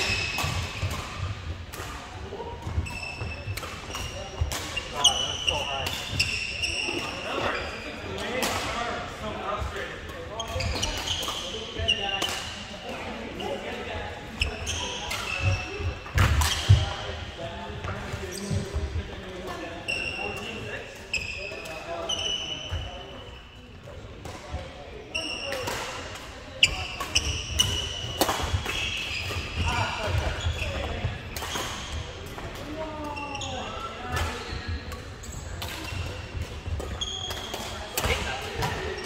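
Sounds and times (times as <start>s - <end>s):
rackets smacking shuttlecocks: 0.0s - 7.2s, 14.6s - 16.9s, 25.5s - 33.2s, 34.1s - 39.0s
sneakers squeaking on wooden floor: 2.6s - 8.0s, 10.4s - 12.2s, 14.4s - 19.0s, 19.8s - 23.5s, 26.6s - 32.2s, 32.9s - 39.0s.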